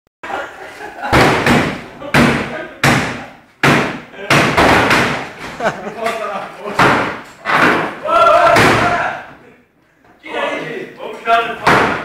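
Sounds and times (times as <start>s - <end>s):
hammer striking sheet metal: 1.1s - 5.3s.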